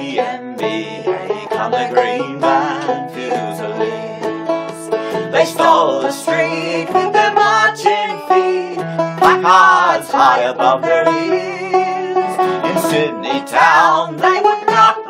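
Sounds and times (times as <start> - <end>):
acoustic guitar strumming: 0.0 - 15.0
banjo strumming: 0.0 - 15.0
man and woman singing duet: 0.0 - 15.0.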